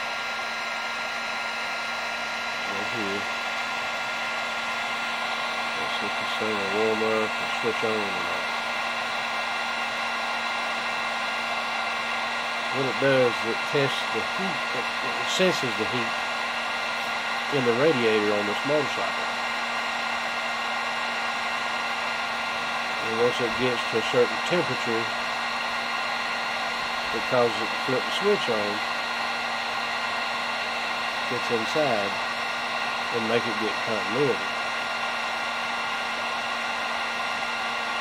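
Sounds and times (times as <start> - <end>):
heat gun blowing air: 0.0 - 38.0.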